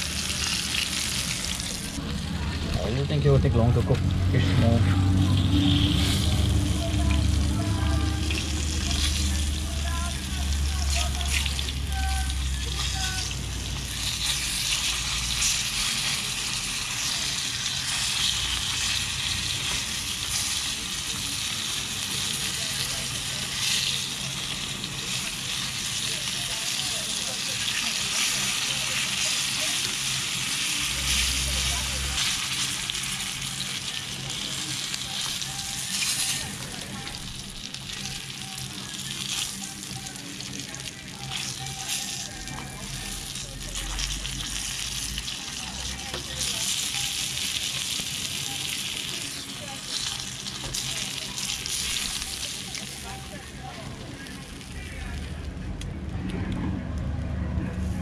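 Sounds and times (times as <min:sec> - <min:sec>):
fish frying in hot oil: 0:00.0 - 0:03.0, 0:04.1 - 0:55.6.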